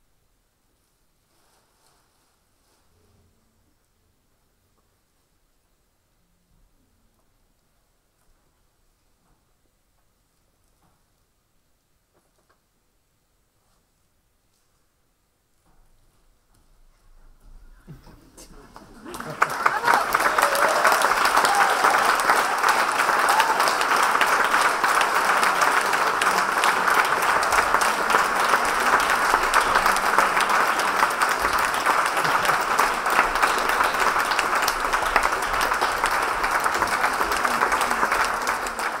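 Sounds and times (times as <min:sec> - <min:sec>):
audience applauding: 0:17.9 - 0:39.0.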